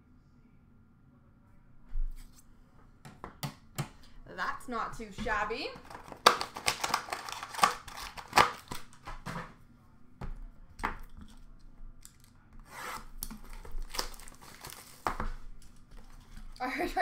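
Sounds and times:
card pack wrappers tearing: 5.8 - 9.1, 12.0 - 16.2
crinkly wrapper rustles: 5.8 - 9.1, 13.2 - 17.0.

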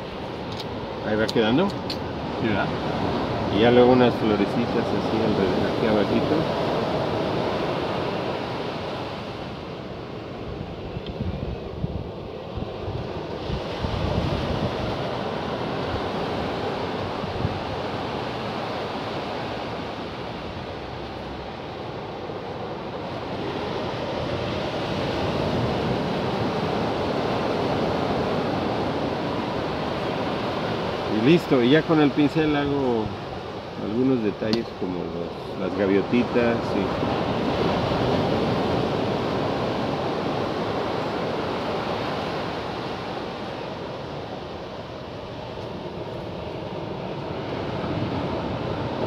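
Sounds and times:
wind buffeting microphone: 0.0 - 21.0
ocean surf on beach: 0.0 - 49.0.

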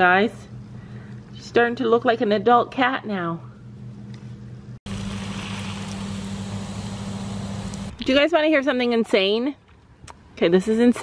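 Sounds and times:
steady low hum: 0.0 - 8.5
even hiss: 4.9 - 8.0.

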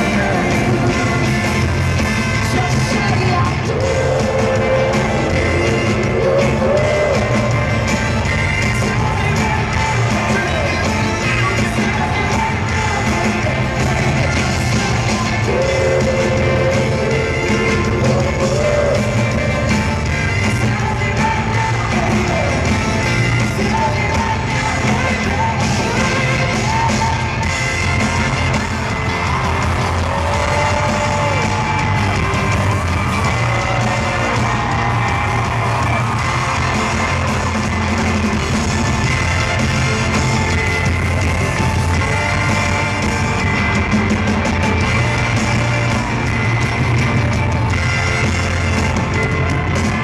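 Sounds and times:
live band playing pop song: 0.0 - 50.0
voices singing and yelling: 0.0 - 50.0.

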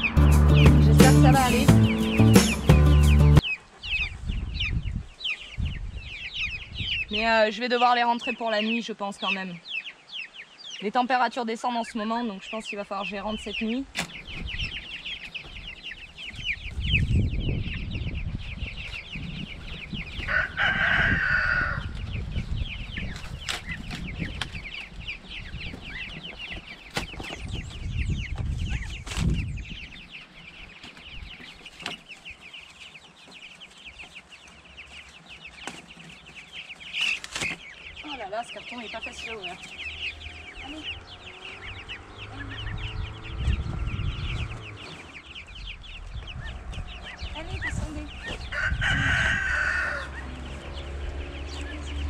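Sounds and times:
low rumbling noise: 0.0 - 3.4, 39.1 - 52.0
chicks peeping: 0.0 - 52.0
loud long chick call: 20.2 - 22.0, 48.2 - 50.7.

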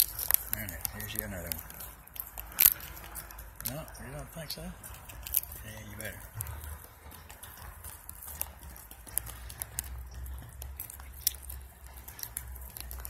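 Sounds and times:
hooves tapping on brick: 0.0 - 13.0.

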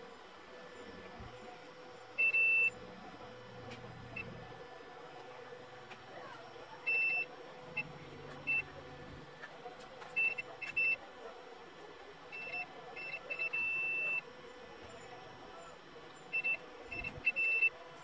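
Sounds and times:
multimeter beeping: 2.2 - 2.8, 6.8 - 8.8, 10.2 - 11.0, 12.3 - 14.2, 16.2 - 17.8.

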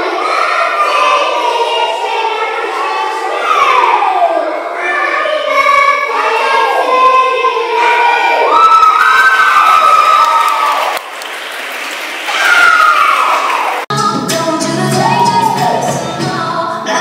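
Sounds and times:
group cheering and whooping: 7.7 - 11.1, 12.2 - 13.9, 14.9 - 16.0
dance music with singing: 13.9 - 17.0.

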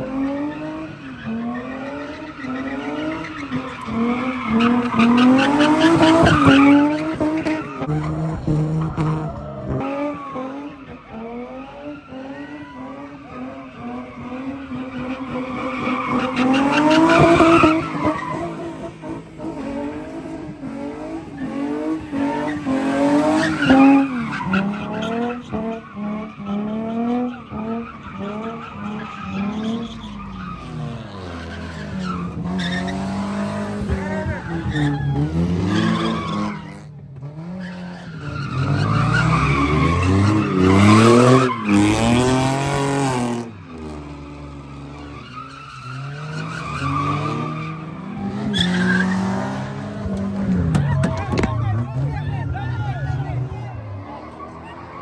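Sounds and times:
car engine revving: 0.0 - 55.0
tyres skidding on pavement: 0.0 - 55.0.

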